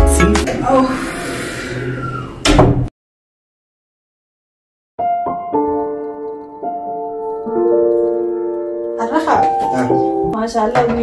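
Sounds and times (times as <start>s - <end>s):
wooden door opening: 2.1s - 2.9s.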